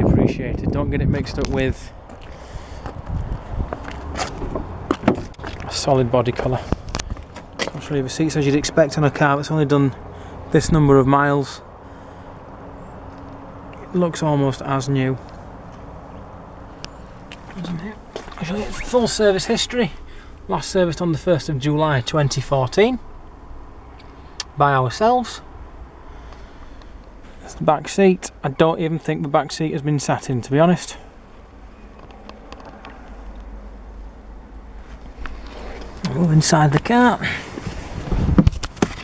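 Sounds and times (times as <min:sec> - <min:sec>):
low steady rumble: 0:00.0 - 0:39.0
man's voice: 0:07.8 - 0:11.6, 0:36.0 - 0:37.5.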